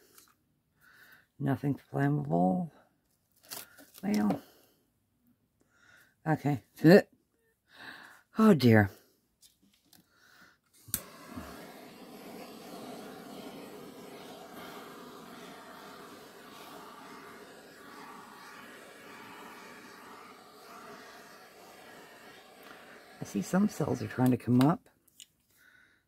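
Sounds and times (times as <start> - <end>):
torch flame hissing: 10.8 - 24.4
torch ignition click: 10.9 - 12.7.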